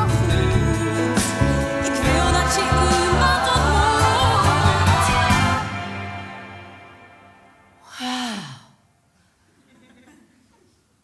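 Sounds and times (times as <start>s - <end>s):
orchestra note: 1.7s - 7.9s.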